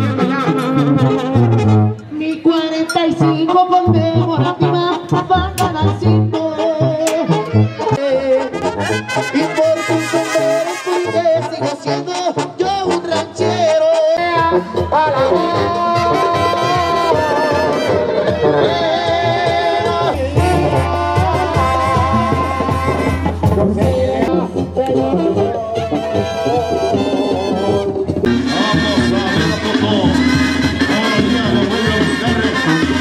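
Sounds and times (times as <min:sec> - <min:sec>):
brass band music: 0:00.0 - 0:33.0.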